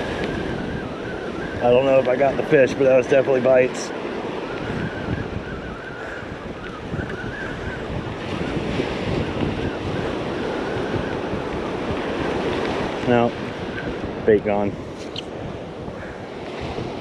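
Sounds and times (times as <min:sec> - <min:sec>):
surf breaking on beach: 0:00.0 - 0:17.0
wind buffeting microphone: 0:00.0 - 0:17.0.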